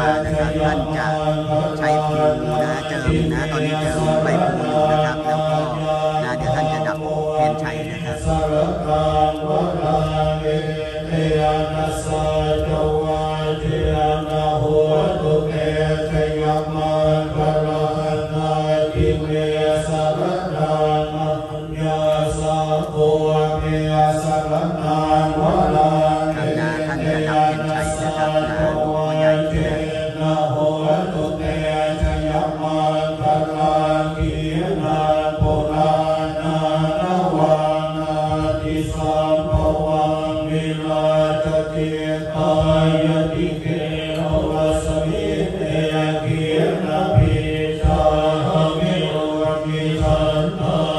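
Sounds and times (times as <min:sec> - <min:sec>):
monks chanting in low monotone: 0:00.0 - 0:50.9.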